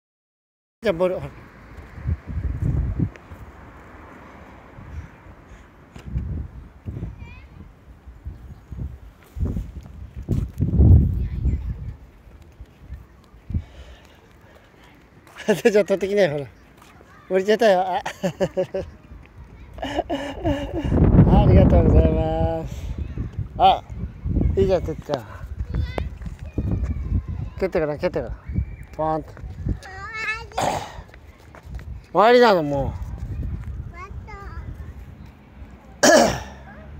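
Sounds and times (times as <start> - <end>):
footsteps on dirt path: 9.1 - 11.2, 11.8 - 17.2, 24.9 - 27.2, 30.9 - 33.9.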